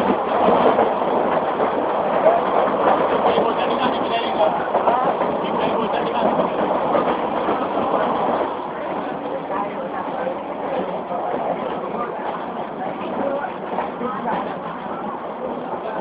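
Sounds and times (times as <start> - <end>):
moving train running noise: 0.0 - 16.0
passengers chattering: 0.0 - 16.0.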